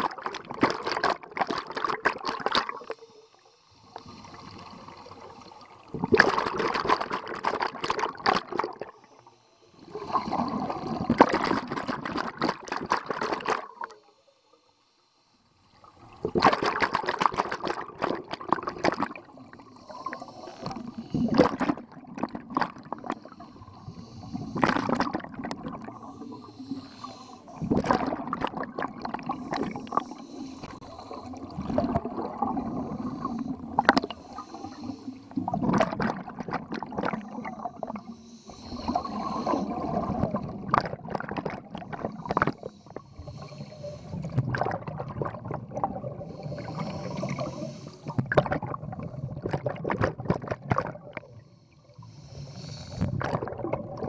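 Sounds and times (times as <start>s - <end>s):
diver's exhaled breath bubbling: 0.0s - 3.1s, 3.7s - 9.1s, 9.8s - 14.0s, 16.0s - 54.0s.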